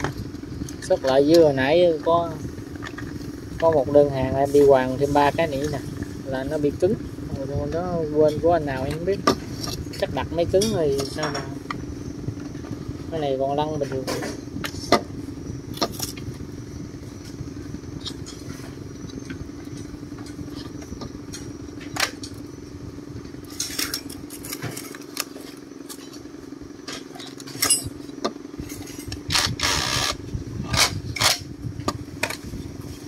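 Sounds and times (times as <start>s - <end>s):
steady low hum: 0.0s - 33.0s
metal clinks and knocks: 26.8s - 29.2s.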